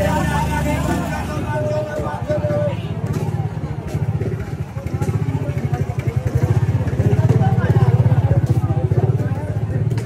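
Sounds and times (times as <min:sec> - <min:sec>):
crowd voices: 0:00.0 - 0:10.0
motorcycle engine puttering: 0:00.0 - 0:10.0.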